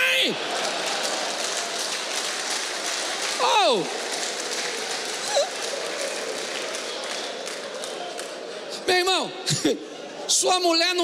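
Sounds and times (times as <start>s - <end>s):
audience laughing and clapping: 0.0s - 8.9s.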